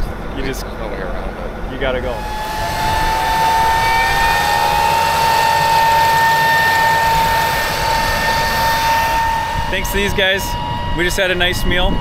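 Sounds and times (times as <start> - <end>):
high-pitched fan whine: 0.0 - 12.0
machine rumble: 0.0 - 12.0
rising gliding tone: 2.0 - 11.8.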